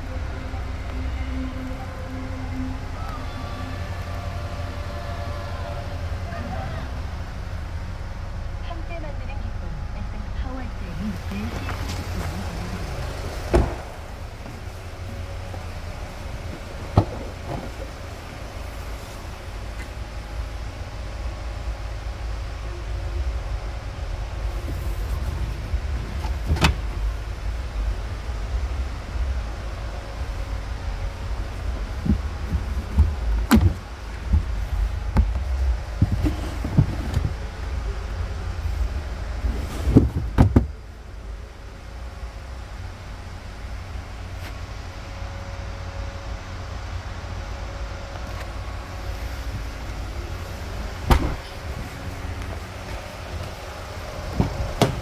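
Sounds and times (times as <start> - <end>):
steady low rumble: 0.0 - 55.0
car door knocks and clunks: 13.5 - 14.0, 32.0 - 37.4, 39.9 - 40.8, 51.1 - 51.5, 54.3 - 55.0.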